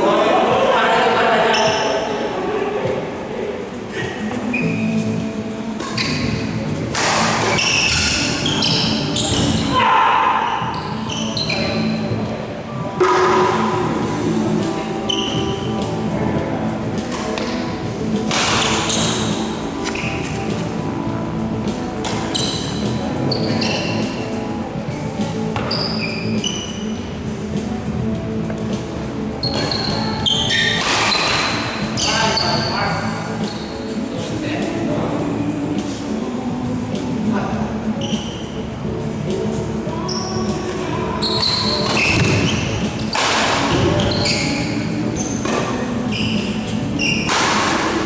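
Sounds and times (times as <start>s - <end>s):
background music: 0.0s - 48.0s
shoes squeaking on court: 1.4s - 2.1s, 4.2s - 9.8s, 10.5s - 16.1s, 17.0s - 20.8s, 21.6s - 27.6s, 28.4s - 34.0s, 37.9s - 38.6s, 39.3s - 48.0s
racket striking shuttlecock: 18.3s - 19.2s, 30.7s - 31.6s, 43.1s - 43.8s.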